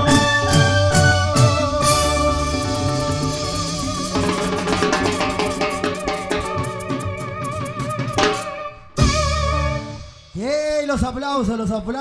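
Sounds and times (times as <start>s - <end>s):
live band playing: 0.0s - 10.8s
drums and percussion beat: 0.0s - 11.2s.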